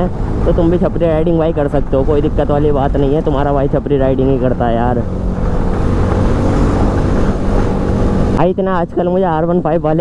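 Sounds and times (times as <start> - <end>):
motorcycle engine running: 0.0 - 8.5
road noise: 0.0 - 10.0
rushing wind: 0.0 - 10.0.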